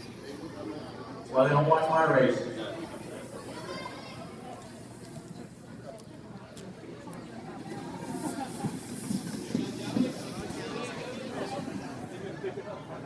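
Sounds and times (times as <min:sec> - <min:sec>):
crowd chatter: 0:00.0 - 0:13.0
skate wheels rolling on wood: 0:06.4 - 0:12.6.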